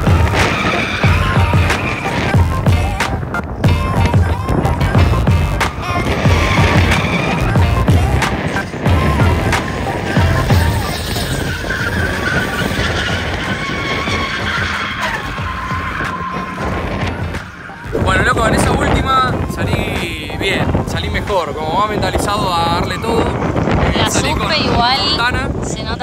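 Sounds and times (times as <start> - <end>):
music with steady beat: 0.0 - 10.9
car engine revving: 0.0 - 21.1
tyres squealing: 0.0 - 26.0.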